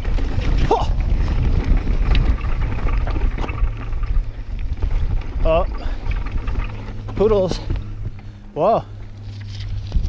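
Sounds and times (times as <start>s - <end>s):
bike clicks and rattles: 0.0s - 10.0s
bike tyre noise: 0.0s - 10.0s
wind rumble on microphone: 0.0s - 10.0s.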